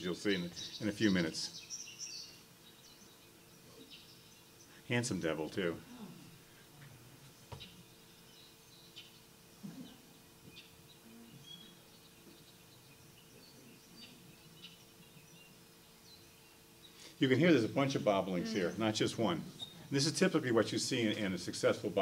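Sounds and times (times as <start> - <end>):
recorded birdsong: 0.0 - 22.0
steady low hum: 0.0 - 22.0.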